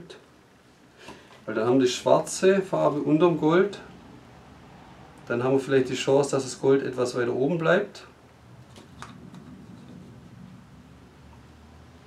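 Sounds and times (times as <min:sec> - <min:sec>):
low hum: 0:08.1 - 0:12.0.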